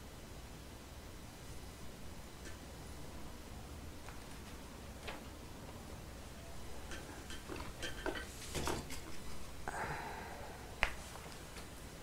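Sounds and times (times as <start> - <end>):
soft breathy sound: 9.6 - 11.1.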